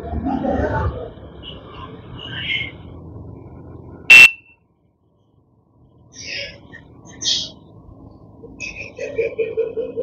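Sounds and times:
electronic buzzer beep: 0:04.1 - 0:04.4.

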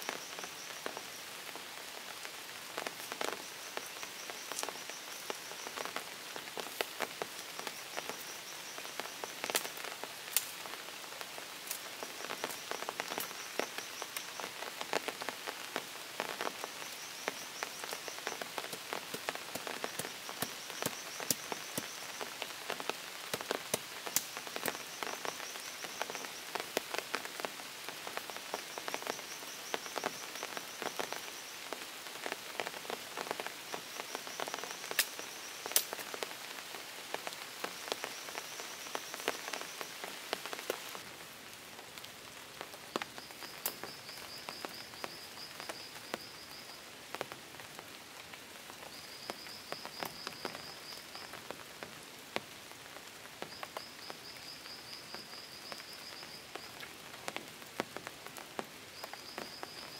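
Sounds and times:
rain falling: 0:00.0 - 0:59.9.

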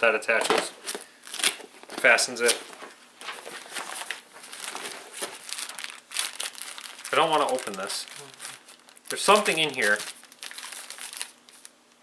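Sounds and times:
plastic packet crackling: 0:03.3 - 0:12.0
canvas bag rustling: 0:03.5 - 0:11.6.

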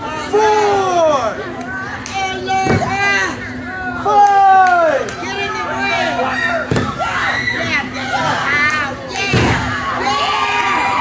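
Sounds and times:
crowd shouting and cheering: 0:00.0 - 0:11.0
thud: 0:09.3 - 0:09.7.

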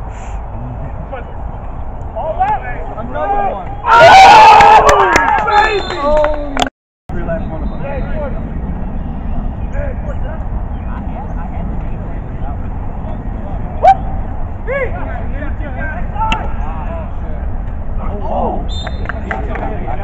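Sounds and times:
distant players shouting: 0:02.1 - 0:06.6, 0:13.7 - 0:17.4.

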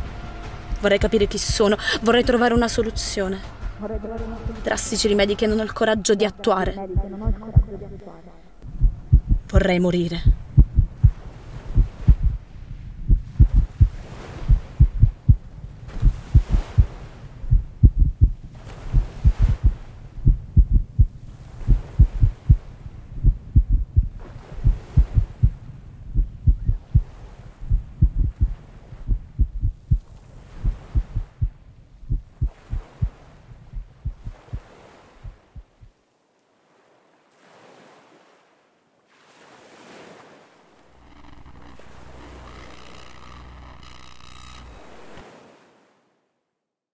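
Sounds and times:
sea waves washing in: 0:00.0 - 0:20.4, 0:21.0 - 0:23.2, 0:24.1 - 0:25.8, 0:26.8 - 0:31.6, 0:32.4 - 0:35.8, 0:36.6 - 0:46.1
loud regular heartbeat: 0:02.5 - 0:03.0, 0:03.7 - 0:04.7, 0:06.8 - 0:07.8, 0:08.6 - 0:12.4, 0:13.0 - 0:22.6, 0:23.2 - 0:35.9.

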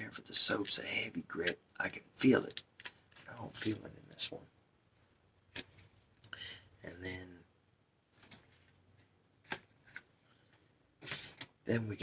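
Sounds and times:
paper packaging rustle: 0:11.0 - 0:11.6.

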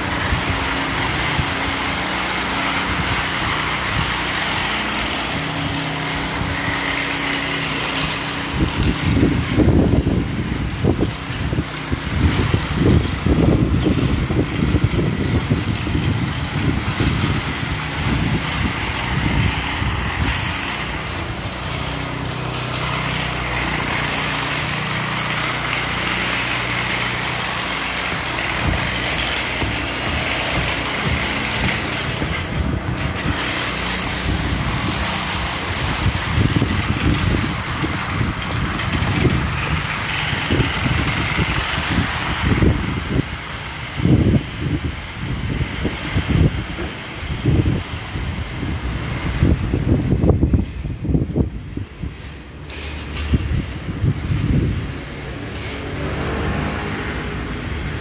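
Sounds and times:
steady engine drone: 0:00.0 - 0:58.0.

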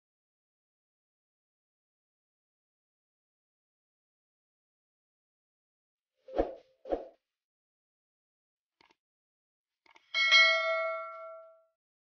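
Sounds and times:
bright bell ding: 0:10.2 - 0:11.6.

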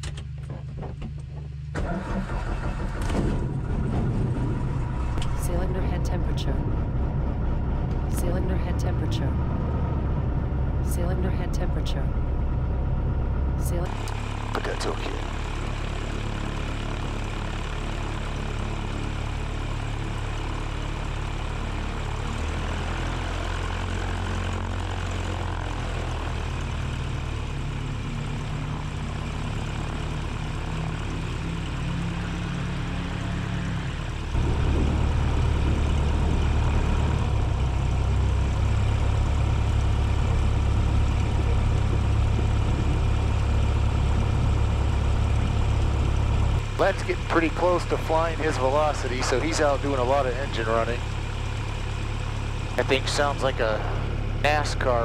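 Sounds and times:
light aircraft engine and propeller: 0:00.0 - 0:55.0.

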